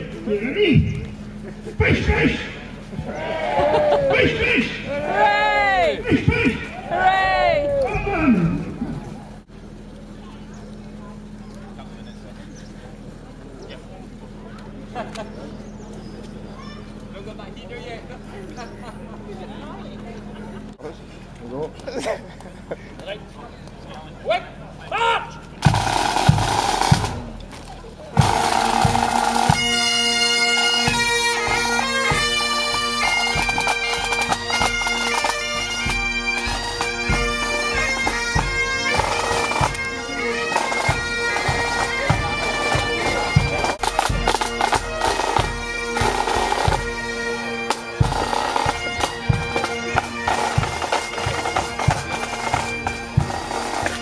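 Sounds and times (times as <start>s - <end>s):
bagpipes playing: 25.6s - 27.4s, 28.2s - 54.0s
drum beats: 25.6s - 27.4s, 28.1s - 54.0s.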